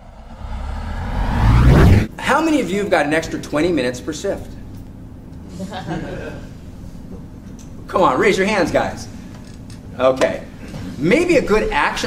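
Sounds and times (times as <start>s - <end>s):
rising whoosh: 0.0s - 2.1s.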